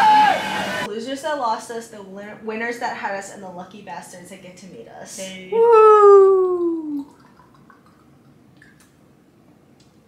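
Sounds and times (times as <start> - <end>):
woman cheering: 0.0 - 0.9, 5.5 - 7.1.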